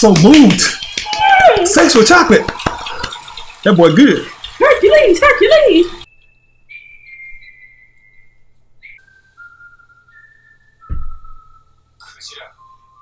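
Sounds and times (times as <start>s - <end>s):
person whistling a slow tune: 6.1s - 12.0s, 12.6s - 13.0s
low thud: 10.8s - 11.5s.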